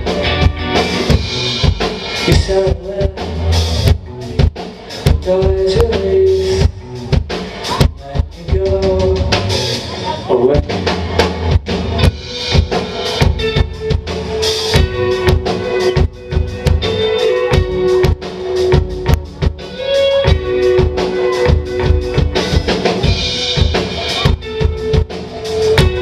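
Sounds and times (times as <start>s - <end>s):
electric guitars sustained notes: 0.0s - 4.4s, 8.0s - 26.0s
drum kit playing: 0.0s - 26.0s
electric bass: 0.0s - 26.0s.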